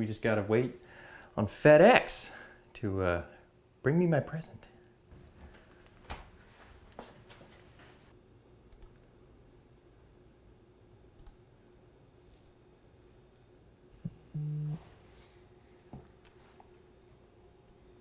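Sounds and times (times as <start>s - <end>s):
faint room hum: 0.0s - 18.0s
computer mouse clicks: 8.7s - 9.1s, 11.2s - 11.4s.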